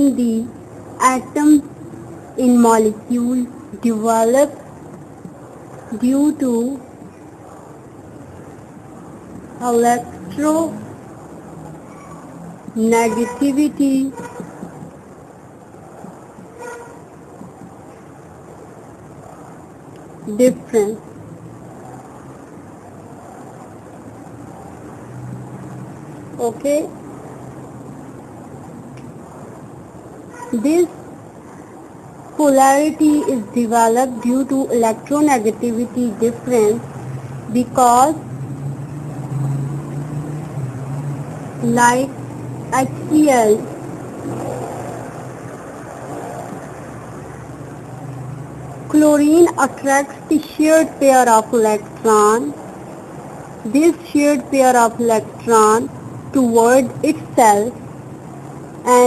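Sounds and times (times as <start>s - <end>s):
faint even noise: 0.0s - 59.0s
low background hum: 0.0s - 59.0s.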